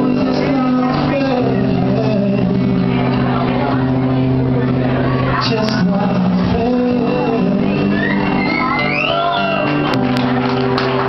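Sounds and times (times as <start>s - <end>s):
acoustic guitar: 0.0s - 11.0s
man singing long low note: 5.3s - 8.4s.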